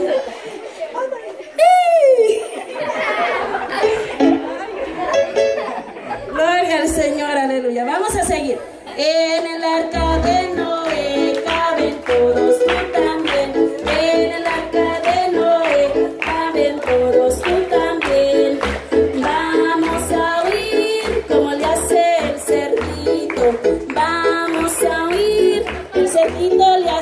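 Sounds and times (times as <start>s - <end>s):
woman singing children's song: 9.0s - 27.0s
people clapping along: 9.2s - 27.0s.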